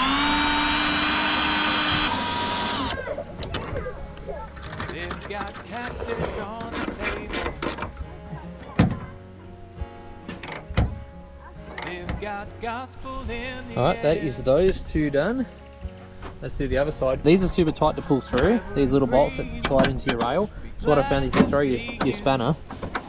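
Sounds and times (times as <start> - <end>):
cordless drills whining: 0.0 - 3.0
background music: 0.0 - 23.0
voices: 1.9 - 9.7, 16.4 - 22.6.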